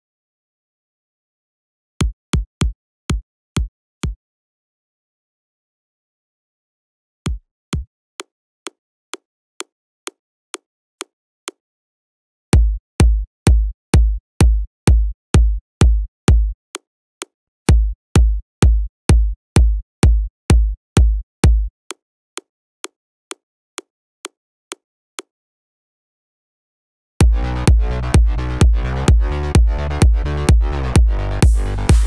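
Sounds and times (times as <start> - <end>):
clicky electronic kick drum hits: 12.6 - 16.5, 17.7 - 21.7, 27.2 - 32.0.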